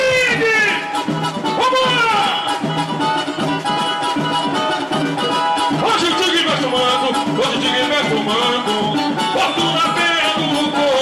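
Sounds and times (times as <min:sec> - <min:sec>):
samba band playing: 0:00.0 - 0:11.0.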